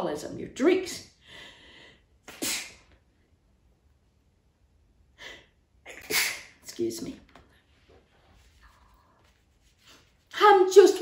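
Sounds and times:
woman sneezing: 2.3s - 2.9s, 5.9s - 6.7s.

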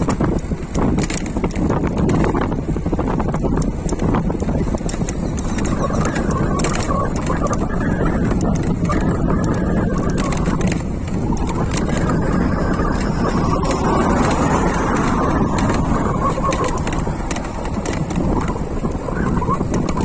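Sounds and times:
faint clicks and rattles: 0.0s - 20.0s
tyre and road noise: 0.0s - 20.0s
wind on microphone: 0.0s - 20.0s.

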